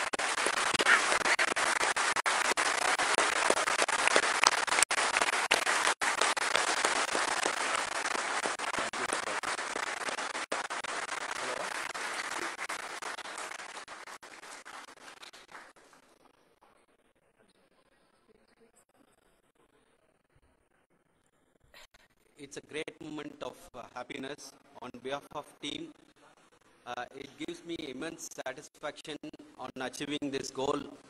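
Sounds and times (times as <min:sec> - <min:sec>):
crowd applauding: 0:00.0 - 0:16.1.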